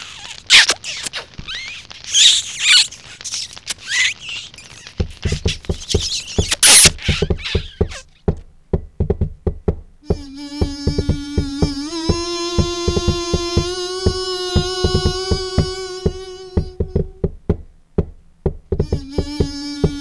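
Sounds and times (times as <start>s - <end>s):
cartoon smooching noises: 0.0s - 8.2s, 18.8s - 20.0s
sharp knocks: 5.0s - 20.0s.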